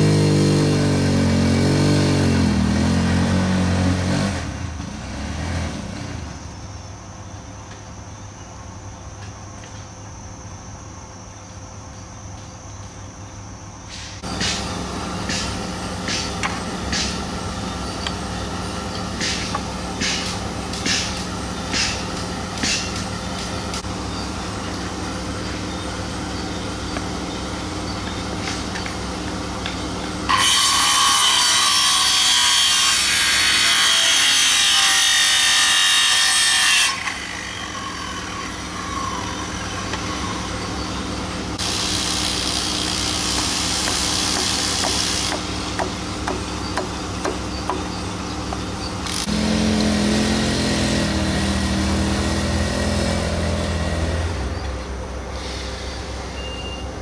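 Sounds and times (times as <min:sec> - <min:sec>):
steady engine hum: 0:00.0 - 0:32.1, 0:36.9 - 0:57.0
circular saw cutting boards: 0:13.9 - 0:56.7.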